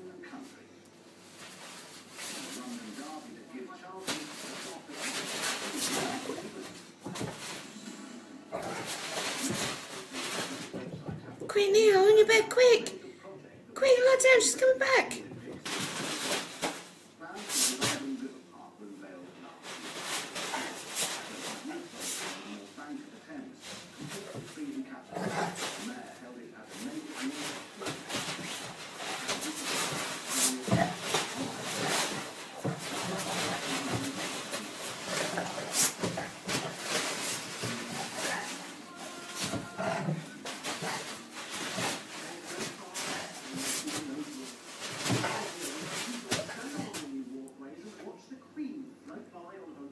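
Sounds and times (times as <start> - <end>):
dogs tussling on a bed: 1.1 - 7.7, 8.5 - 11.5, 15.2 - 18.3, 19.4 - 47.2
dogs vocalizing: 25.0 - 25.9, 27.4 - 43.8.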